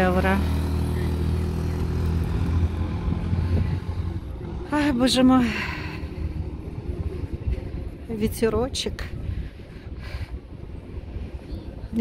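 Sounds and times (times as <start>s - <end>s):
road traffic: 0.0s - 12.0s
wind buffeting microphone: 0.6s - 12.0s.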